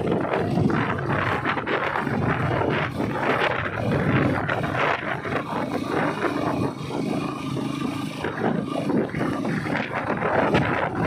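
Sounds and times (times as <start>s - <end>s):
vehicle driving on gravel road: 0.0s - 11.0s
wind buffeting microphone: 0.0s - 11.0s.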